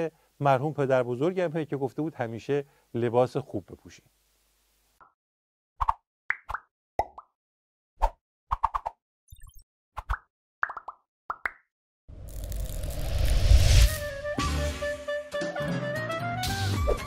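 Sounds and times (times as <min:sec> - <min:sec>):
cartoon bubbly pops: 0:08.5 - 0:11.6
noisy whoosh: 0:12.1 - 0:14.4.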